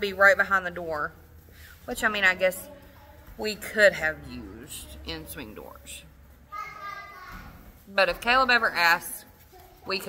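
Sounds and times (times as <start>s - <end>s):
child calling out: 6.5s - 7.5s.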